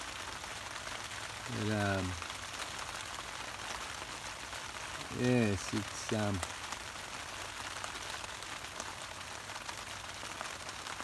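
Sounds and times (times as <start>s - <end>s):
heavy rain on river and tarp: 0.0s - 11.0s.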